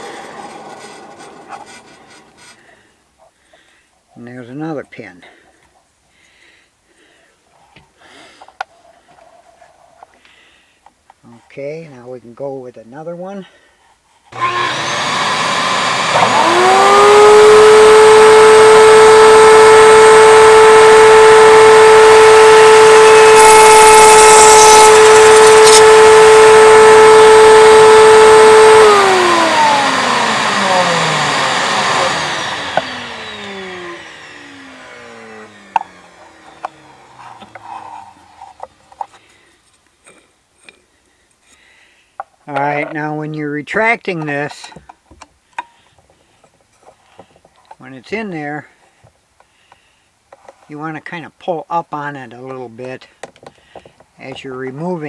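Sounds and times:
router high whine: 0.0 - 2.6, 14.4 - 38.7
shop vacuum running: 0.0 - 2.8, 14.3 - 38.6.

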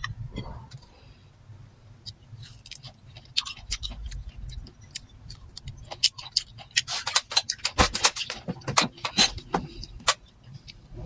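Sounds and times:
wet chewing and lip-smacking: 2.0 - 10.9.

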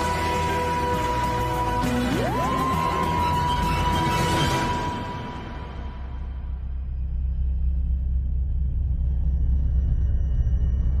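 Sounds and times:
deep steady starship rumble: 6.0 - 11.0.

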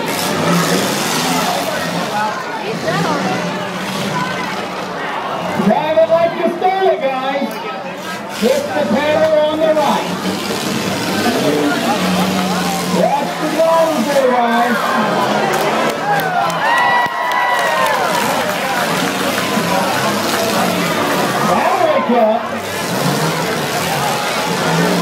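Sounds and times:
car engines revving: 0.0 - 25.0
spectators shouting: 7.7 - 25.0.

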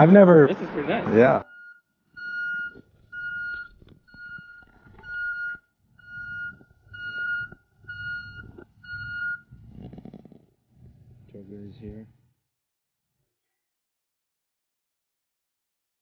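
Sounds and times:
truck engine running: 0.0 - 12.3
truck reversing alarm beeping: 0.5 - 10.0.

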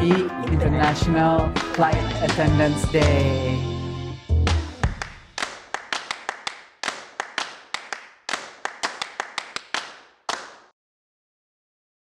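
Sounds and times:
sharp clap-like hits: 0.8 - 3.2, 4.5 - 10.7.

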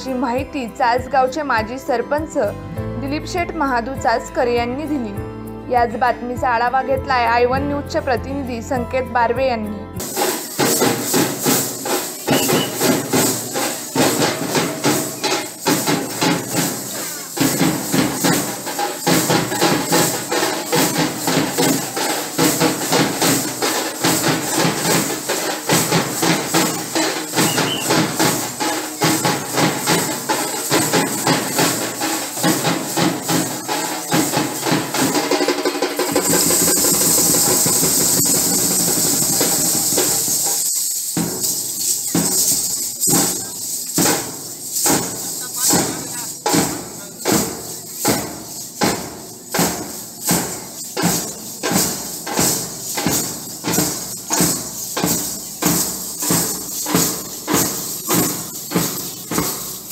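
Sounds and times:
drumming: 10.0 - 59.9
jingle sticks clashing: 10.0 - 59.9.

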